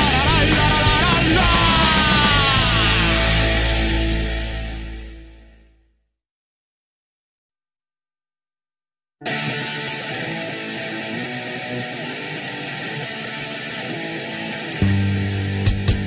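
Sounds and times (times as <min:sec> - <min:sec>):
drums: 0:00.0 - 0:05.1, 0:14.8 - 0:16.0
punk rock guitar: 0:00.0 - 0:05.7, 0:09.2 - 0:16.0
bass guitar: 0:00.0 - 0:05.9, 0:14.3 - 0:16.0.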